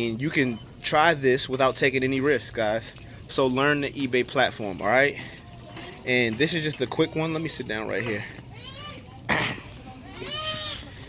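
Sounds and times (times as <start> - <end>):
child's high-pitched vocal sound: 8.5 - 9.2.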